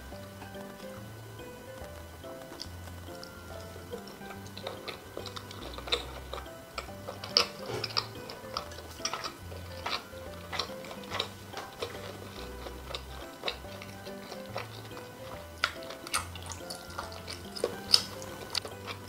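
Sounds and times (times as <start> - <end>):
soft background music: 0.0 - 19.0
chewing mouth sounds: 1.7 - 19.0.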